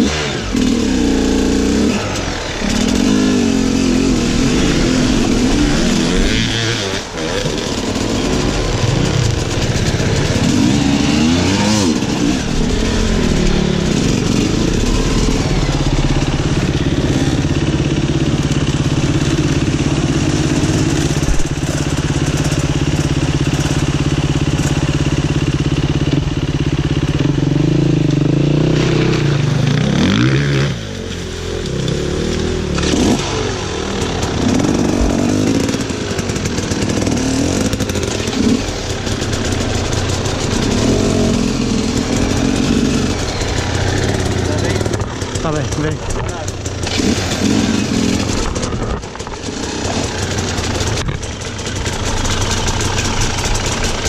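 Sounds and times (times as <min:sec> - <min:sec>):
motorcycle engine idling and revving: 0:00.0 - 0:54.0.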